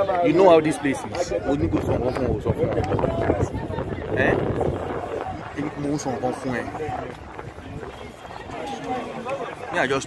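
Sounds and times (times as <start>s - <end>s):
outdoor background noise: 0.0s - 10.0s
quiet talking: 0.0s - 10.0s.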